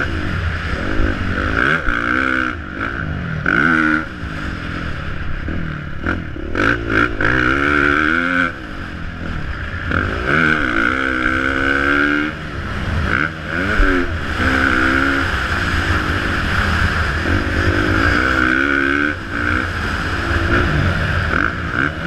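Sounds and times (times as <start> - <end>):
motocross bike engine revving: 0.0 - 22.0.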